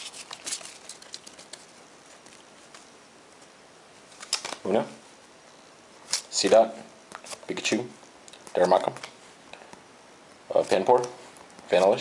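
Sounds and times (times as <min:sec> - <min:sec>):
foil pack crinkling: 0:00.0 - 0:02.9
low steady hiss: 0:00.0 - 0:12.0.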